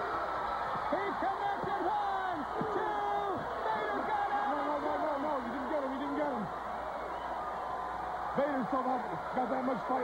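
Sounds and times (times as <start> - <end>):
arena crowd noise: 0.0 - 10.0
man commentating excitedly: 0.9 - 6.5, 8.4 - 10.0.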